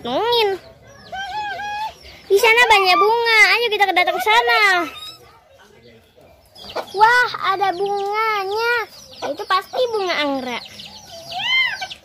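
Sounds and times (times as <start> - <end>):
faint background noise: 0.0 - 12.0.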